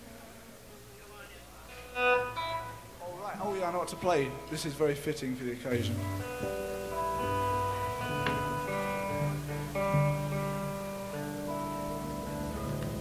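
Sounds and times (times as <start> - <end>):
guitar sustained notes: 1.7 - 13.0.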